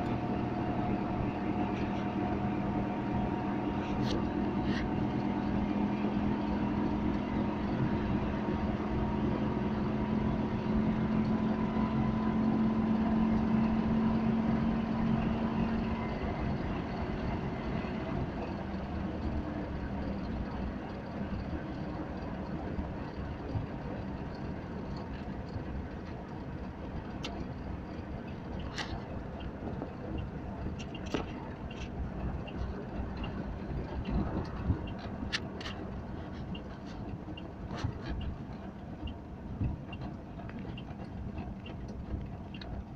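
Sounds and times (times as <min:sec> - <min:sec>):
two-stroke car engine droning: 0:00.0 - 0:42.9.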